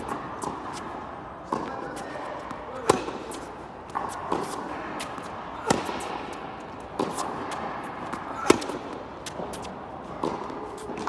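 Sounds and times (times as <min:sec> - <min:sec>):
tennis ball struck by racket: 0:00.0 - 0:11.0.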